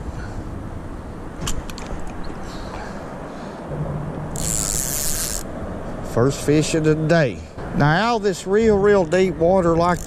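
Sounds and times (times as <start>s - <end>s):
fishing reel clicks: 4.4s - 5.5s
fishing reel whirring: 4.4s - 5.5s.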